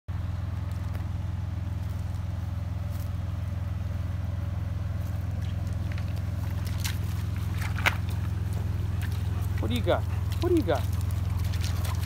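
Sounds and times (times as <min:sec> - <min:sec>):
truck engine idling: 0:00.1 - 0:12.0.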